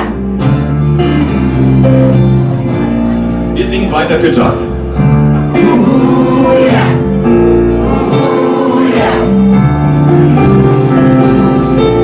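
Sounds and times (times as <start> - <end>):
acoustic guitar strumming: 0.0 - 12.0
electric bass: 0.0 - 12.0.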